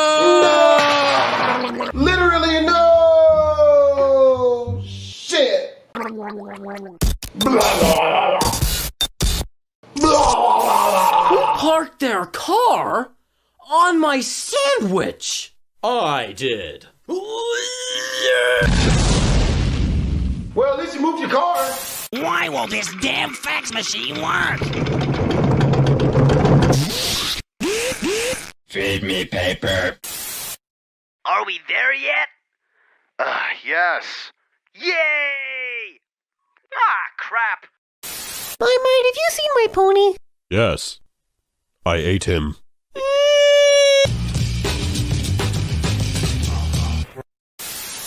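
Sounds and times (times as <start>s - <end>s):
vocal cry bending in pitch: 6.0s - 8.6s, 10.0s - 11.7s, 43.0s - 44.2s.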